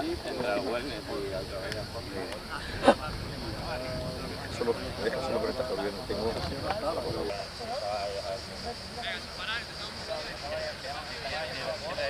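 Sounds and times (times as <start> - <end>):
high-pitched hiss: 0.0 - 12.0
men talking: 0.0 - 12.0.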